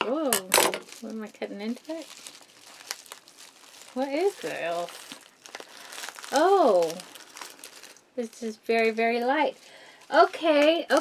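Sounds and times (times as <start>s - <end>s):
plastic packaging crinkling: 0.1s - 11.0s.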